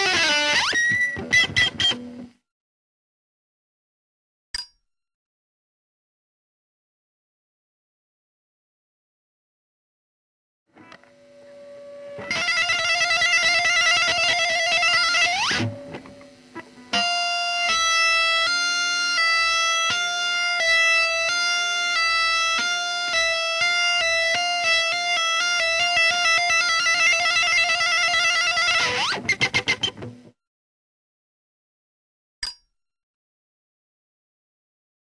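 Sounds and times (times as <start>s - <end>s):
electric guitar solo: 0.0s - 2.3s, 10.8s - 30.3s.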